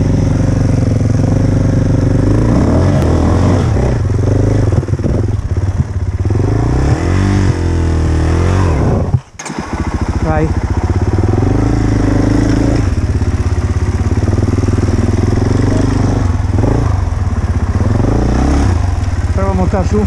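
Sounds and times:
motorcycle engine idling: 0.0 - 20.0.

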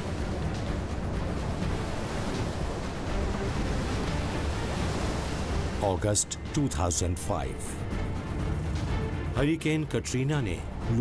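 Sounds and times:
hurricane wind and rain: 0.0 - 11.0.

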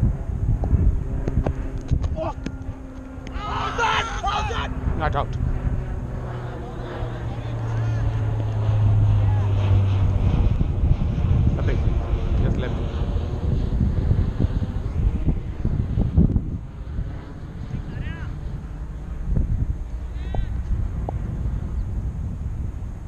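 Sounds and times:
steady low hum: 0.0 - 23.0
wind rumbling on microphone: 0.0 - 23.0
distant voices calling: 2.1 - 9.9.

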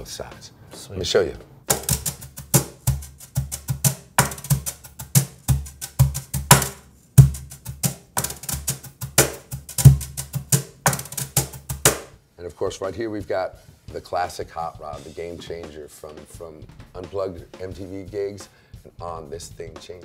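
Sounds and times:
cajon bass accents: 1.0 - 18.2
cajon snare-like strokes: 1.6 - 12.2, 12.8 - 18.4
quick brush strokes: 1.7 - 12.1.

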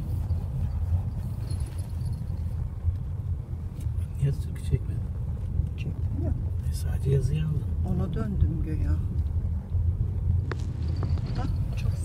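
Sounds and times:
car driving slowly: 0.0 - 12.0.

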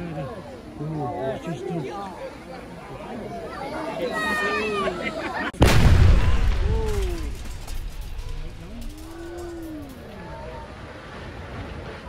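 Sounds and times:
deep explosion boom rumbling: 5.6 - 10.1.

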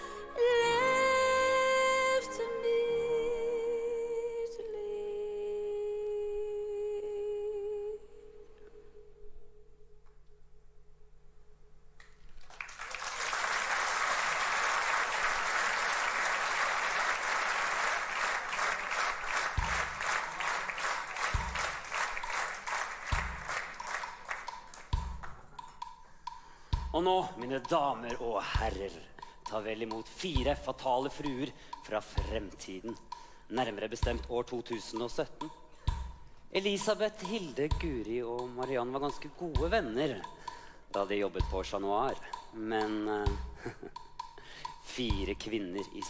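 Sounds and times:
woman singing a long note: 0.0 - 9.6
audience applauding: 12.2 - 25.5.

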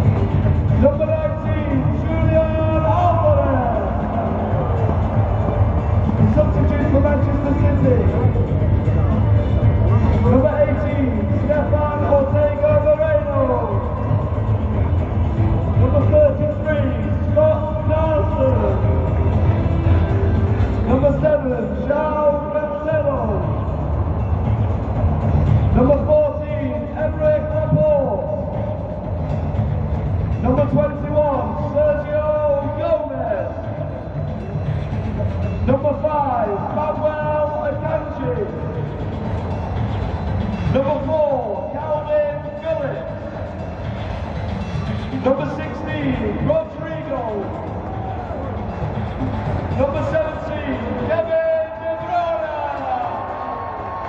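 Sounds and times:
crowd rumble in stadium: 0.0 - 54.0
pa system sound echoing: 0.0 - 54.0.

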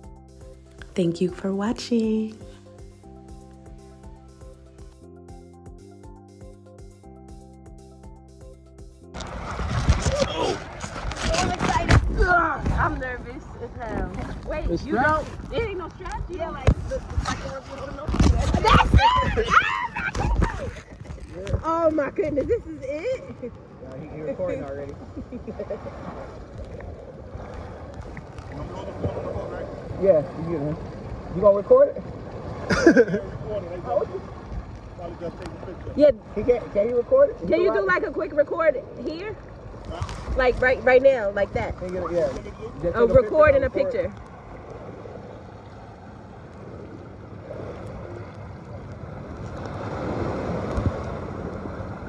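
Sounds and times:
muffled wind and water rush: 9.1 - 52.0.

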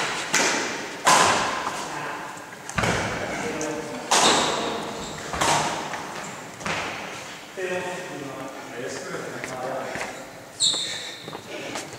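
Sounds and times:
hand slaps echoing in a hall: 0.0 - 1.8, 2.7 - 7.1.

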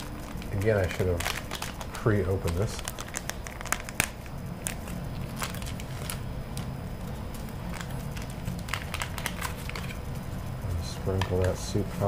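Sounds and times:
plastic sachet crinkling: 0.0 - 10.4
low steady hum: 0.0 - 12.0.

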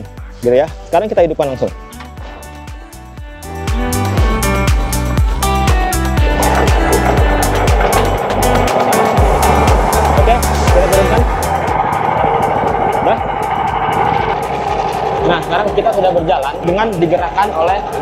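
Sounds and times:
background music with steady beat: 0.0 - 18.0
boat engine running: 1.6 - 18.0.

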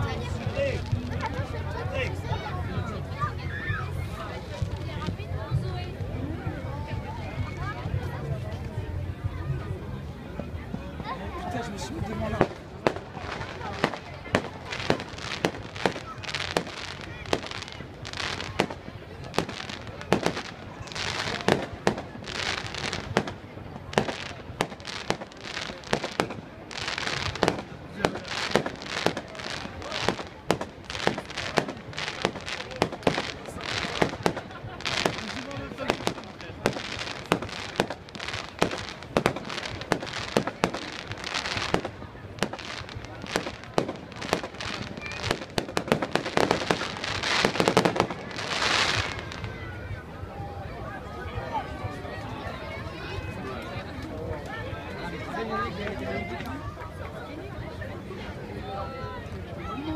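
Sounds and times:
fireworks bangs: 12.3 - 49.6.

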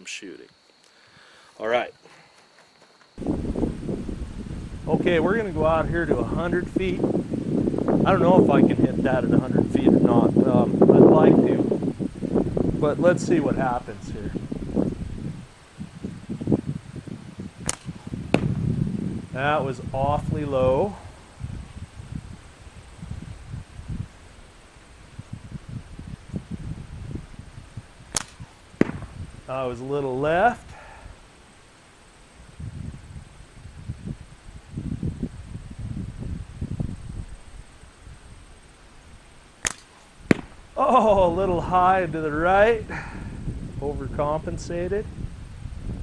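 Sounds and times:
light wind: 0.0 - 46.0
slingshot crack: 17.6 - 18.7, 28.1 - 29.3, 39.6 - 40.8.

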